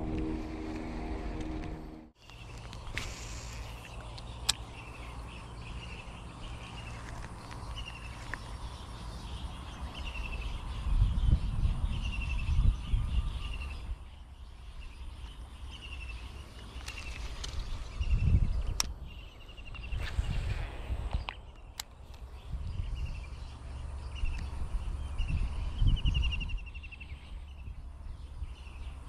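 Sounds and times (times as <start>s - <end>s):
bird calling high falling notes: 0.0s - 2.2s
low rumbling microphone noise: 0.0s - 2.2s.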